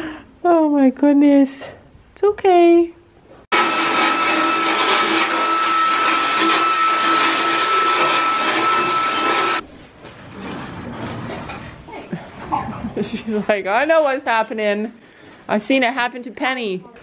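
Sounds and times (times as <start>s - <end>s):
motorised dental float whining: 3.6s - 9.6s.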